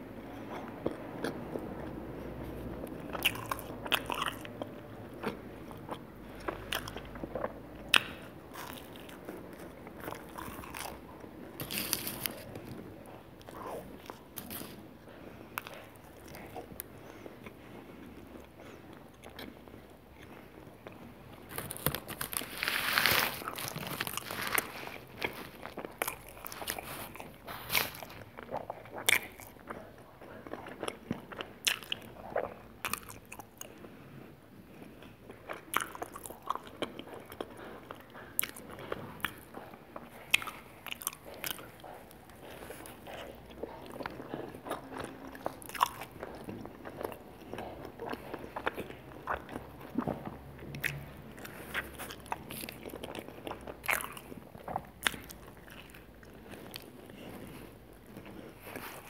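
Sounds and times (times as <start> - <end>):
person chewing: 0.0 - 59.0
crunching food: 0.3 - 33.9, 35.0 - 59.0.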